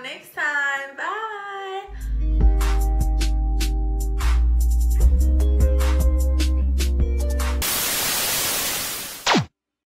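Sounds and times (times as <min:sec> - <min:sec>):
background music with beat: 0:02.0 - 0:07.6
tv static hiss: 0:07.6 - 0:09.5.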